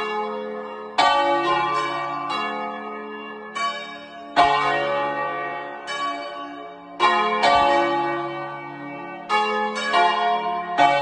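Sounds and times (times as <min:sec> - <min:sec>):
church bells ringing close up: 0:00.0 - 0:11.0.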